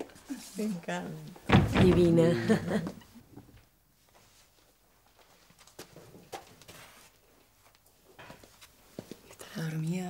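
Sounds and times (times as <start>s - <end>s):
soft rustle: 0.0s - 1.5s, 3.6s - 9.6s
footsteps on hard floor: 5.1s - 9.3s.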